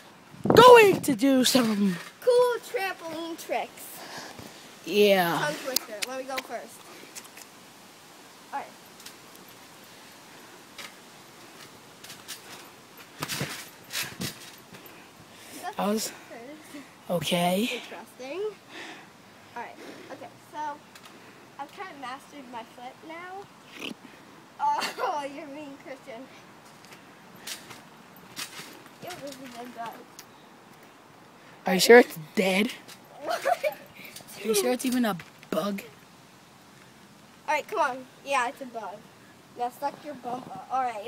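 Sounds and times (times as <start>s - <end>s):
trampoline mat and springs: 11.6s - 15.1s
trampoline mat thumps: 13.2s - 14.5s.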